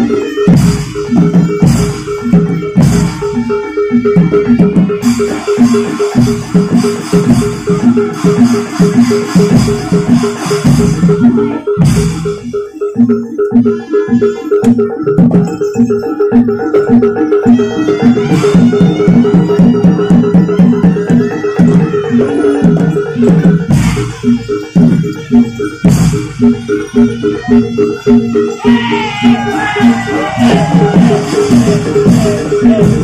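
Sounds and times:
gamelan music: 0:00.0 - 0:33.0
metal mallet instruments: 0:00.0 - 0:33.0.

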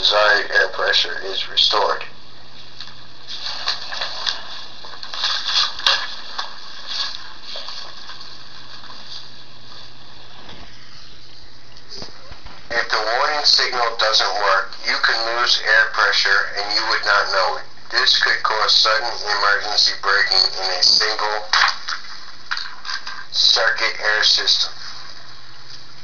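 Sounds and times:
man reading aloud: 0:00.0 - 0:02.2, 0:12.7 - 0:21.7, 0:23.2 - 0:25.1.

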